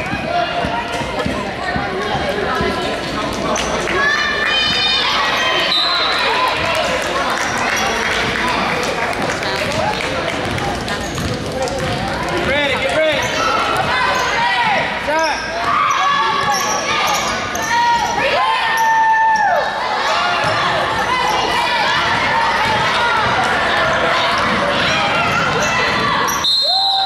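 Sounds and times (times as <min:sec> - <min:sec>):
crowd voices in echoing gym: 0:00.0 - 0:27.0
referee's whistle: 0:05.6 - 0:06.2, 0:26.3 - 0:27.0
basketball dribbling: 0:09.6 - 0:14.0
sneakers squeaking: 0:10.4 - 0:19.0, 0:20.1 - 0:27.0.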